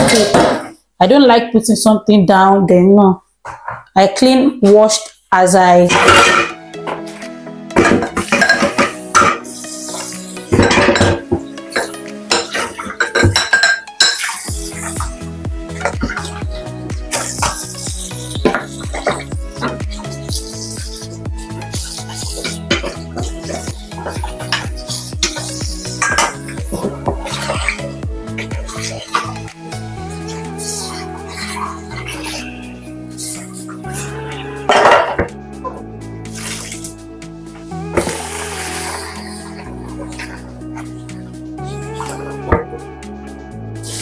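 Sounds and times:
dishes clinking in a sink: 5.9 - 7.0, 7.8 - 14.5, 21.7 - 27.9, 34.7 - 35.3
background music with bass beat: 5.9 - 44.0.

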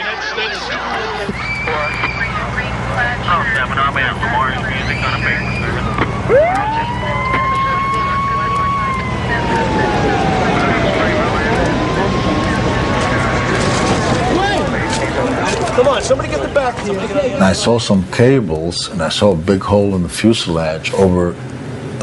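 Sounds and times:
rescue workers' voices: 0.0 - 21.4
wailing siren: 0.6 - 15.6
steady low rumble: 1.1 - 22.0.

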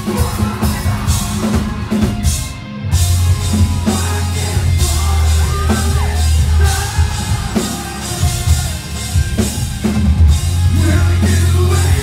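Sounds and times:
bass guitar: 0.0 - 12.0
drum kit: 0.0 - 12.0
hardcore band playing live: 0.0 - 12.0.

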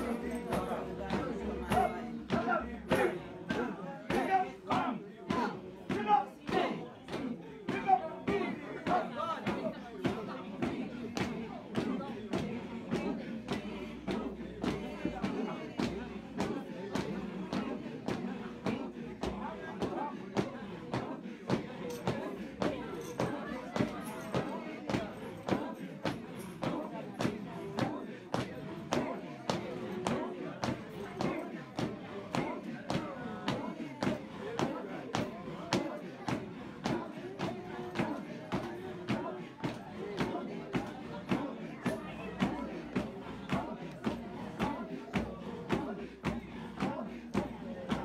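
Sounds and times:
congregation singing: 0.0 - 48.0.

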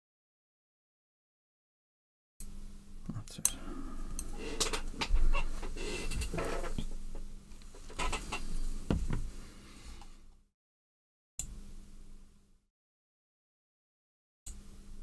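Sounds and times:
steady low hum: 2.4 - 10.5, 11.4 - 12.6.

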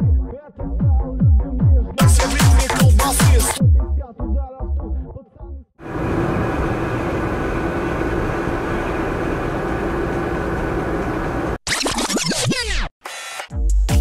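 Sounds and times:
car cabin driving noise: 5.9 - 11.6.

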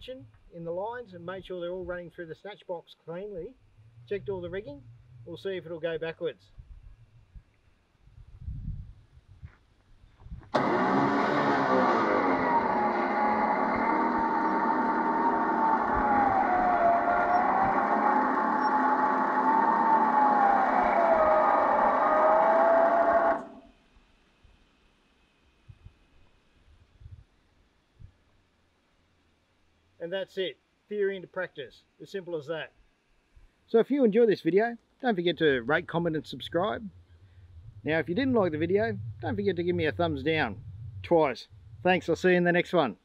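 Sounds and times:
electric winch whining: 10.5 - 23.7, 36.0 - 42.1.

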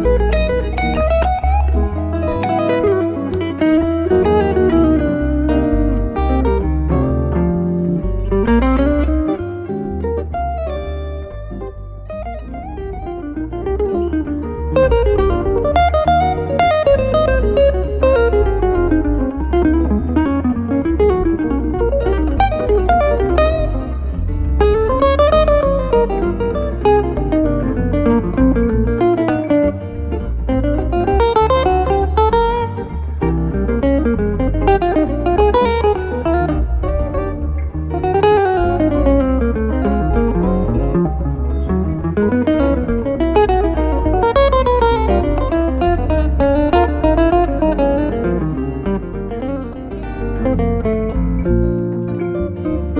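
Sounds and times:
guitar low notes: 0.0 - 52.9.

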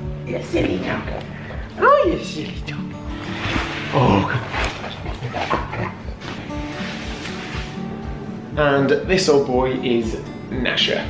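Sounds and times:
dog vocalizing: 3.5 - 6.2.

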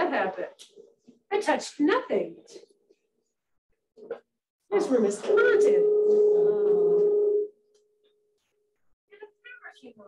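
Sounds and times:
loud steady electronic tone: 5.2 - 7.6.

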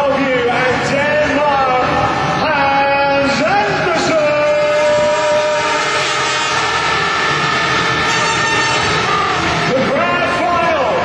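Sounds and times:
motorcycle engines revving: 3.2 - 11.0.

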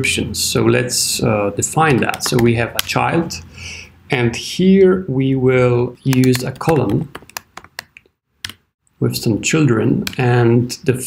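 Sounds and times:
computer keyboard typing: 1.9 - 3.0, 6.1 - 8.6.

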